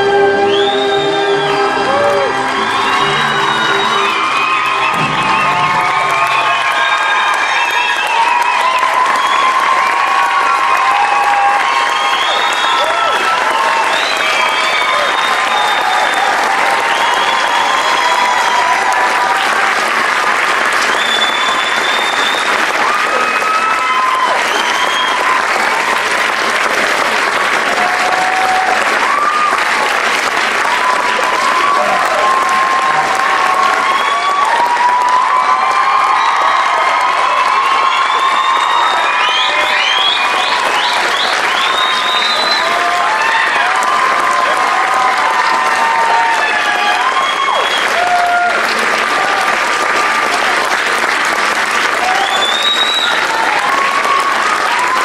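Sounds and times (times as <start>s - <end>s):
audience applause: 0.0s - 55.0s
cheers and whistles: 0.0s - 55.0s.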